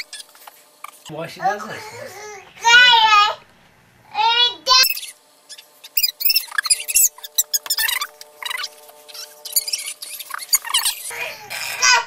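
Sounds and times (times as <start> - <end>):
baby squealing: 4.8 - 12.0.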